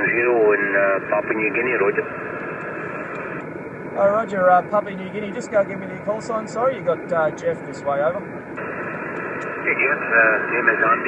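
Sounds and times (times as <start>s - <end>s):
radio static hiss: 0.0s - 11.0s
car road noise: 2.0s - 11.0s.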